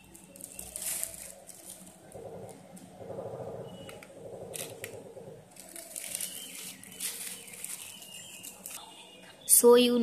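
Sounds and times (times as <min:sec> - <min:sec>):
plastic packaging rustling: 0:00.0 - 0:03.0, 0:03.7 - 0:08.8.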